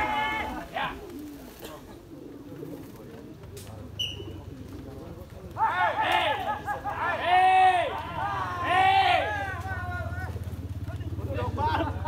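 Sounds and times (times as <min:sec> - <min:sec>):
men calling out in long shouts: 0:00.0 - 0:01.0, 0:05.6 - 0:10.4
low murmur: 0:00.0 - 0:12.0.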